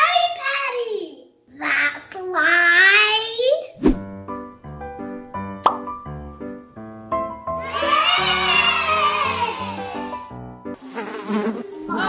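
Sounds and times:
sharp pop: 5.6 - 5.9
upbeat children's music: 5.6 - 10.6.

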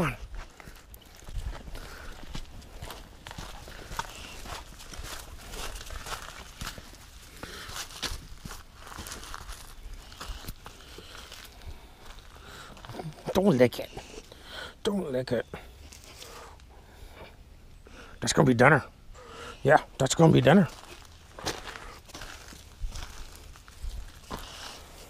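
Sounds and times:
footsteps of person and dog: 0.1 - 13.2, 20.7 - 25.0.

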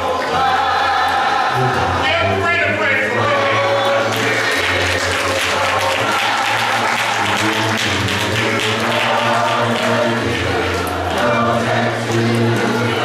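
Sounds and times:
choir singing a cappella: 0.0 - 2.4, 3.0 - 13.0
congregation applauding: 0.0 - 13.0.

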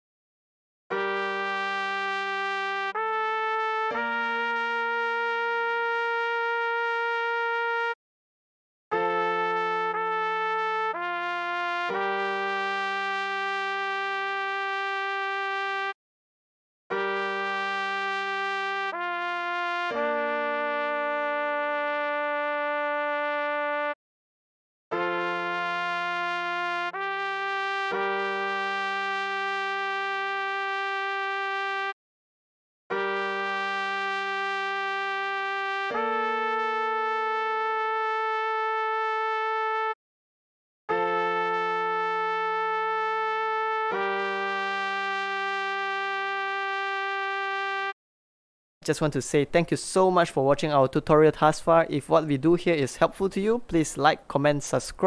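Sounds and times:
synthesized trumpet melody: 0.9 - 8.0, 8.9 - 16.0, 16.9 - 24.0, 24.9 - 32.0, 32.9 - 40.0, 40.9 - 48.0.

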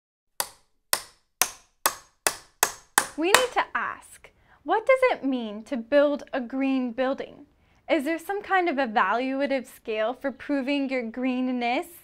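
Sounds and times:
sharp claps: 0.4 - 3.6.

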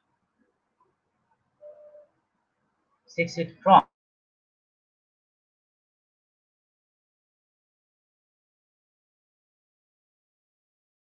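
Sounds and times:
faint steady tone: 1.6 - 2.5.

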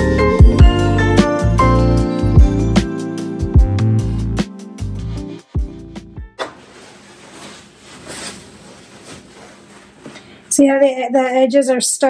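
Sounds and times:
guitar background music: 0.0 - 6.4.

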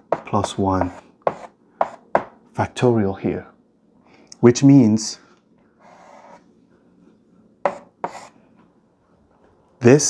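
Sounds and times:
chalk strokes on blackboard: 0.1 - 2.1, 5.8 - 6.5, 7.6 - 8.4.

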